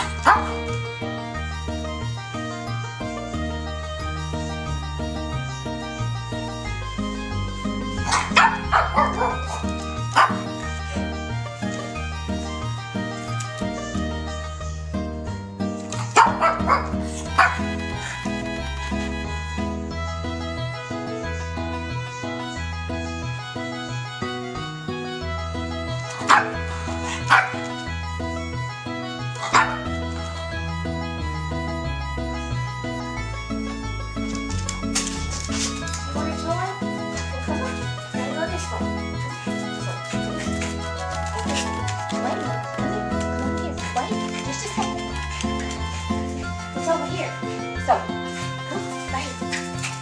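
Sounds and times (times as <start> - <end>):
dog barking: 0.0 - 0.7, 8.0 - 10.7, 16.0 - 17.7, 26.2 - 27.8, 29.4 - 29.9
background music: 0.0 - 50.0.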